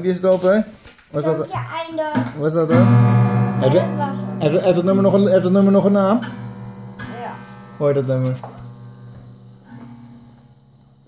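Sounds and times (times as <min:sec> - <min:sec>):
guitar strings ringing: 0:02.2 - 0:11.0.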